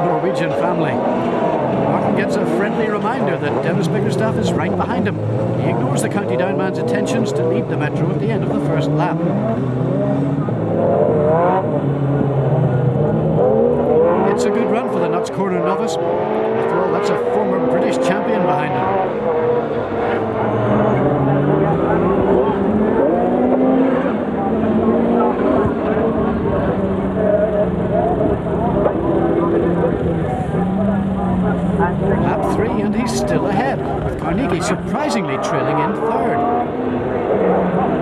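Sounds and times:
car engines revving hard: 0.0 - 38.0.

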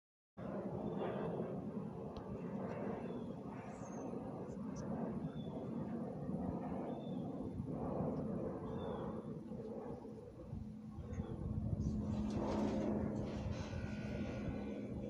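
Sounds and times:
steady low rumble: 0.4 - 15.0.

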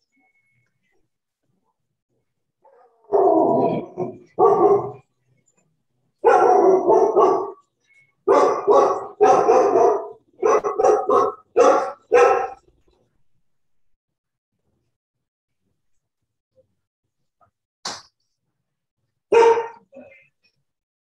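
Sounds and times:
dog barking: 2.7 - 5.0, 6.2 - 7.6, 8.3 - 12.7, 19.3 - 20.0.

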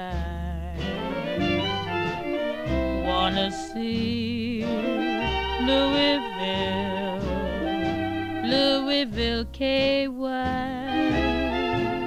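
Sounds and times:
swing big band playing: 0.0 - 12.0.

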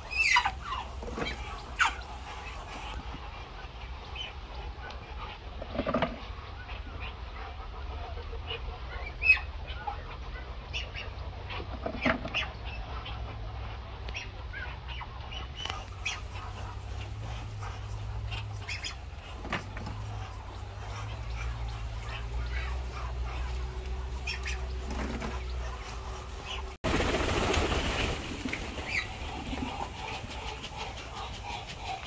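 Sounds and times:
ducks calling: 0.0 - 32.0
steady low hum: 0.0 - 32.0.

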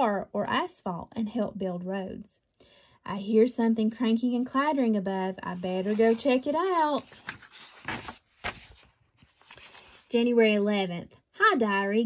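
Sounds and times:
paper page turning: 5.6 - 10.1.

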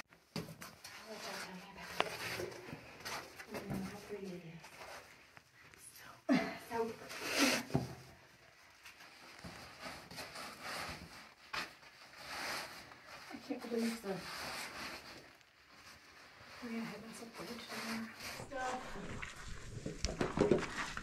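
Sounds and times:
clothing scraping against rock: 9.2 - 21.0.

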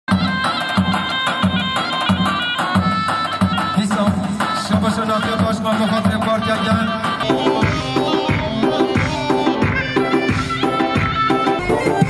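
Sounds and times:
steady drum beat: 0.1 - 12.0
wind instrument melody: 0.1 - 12.0.

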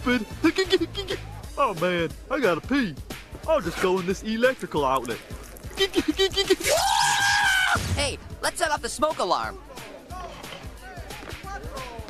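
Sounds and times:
background music with bass: 0.0 - 12.0
indistinct voices talking: 0.0 - 12.0.

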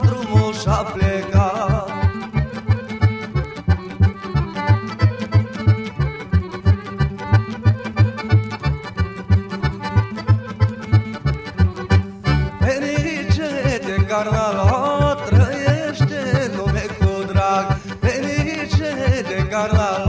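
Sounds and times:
accordion melody: 0.0 - 20.0
bass and chord beat: 2.0 - 12.7.

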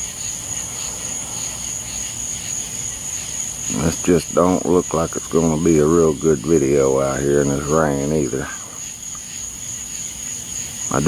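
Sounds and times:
insects trilling: 0.0 - 11.0
soft insect chirp: 0.0 - 11.0.

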